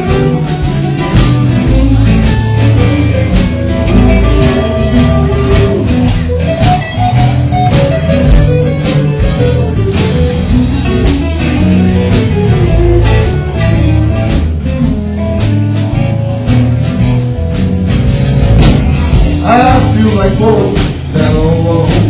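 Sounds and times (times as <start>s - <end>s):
bass: 0.0s - 22.0s
electric guitar: 0.0s - 22.0s
steady drum beat: 0.0s - 22.0s.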